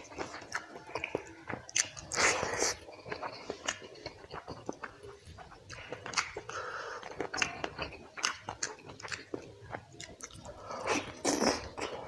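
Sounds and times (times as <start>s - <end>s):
wet chewing and mouth smacks: 0.0s - 12.0s.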